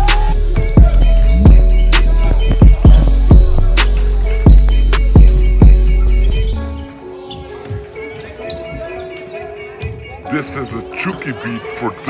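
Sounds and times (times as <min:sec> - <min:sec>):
voices echoing in a hall: 0:05.8 - 0:12.0.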